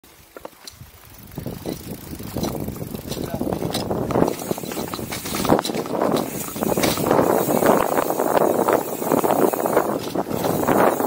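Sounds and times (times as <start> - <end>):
bike rattling clicks and knocks: 0.1 - 11.0
tyres rushing on dirt: 0.2 - 11.0.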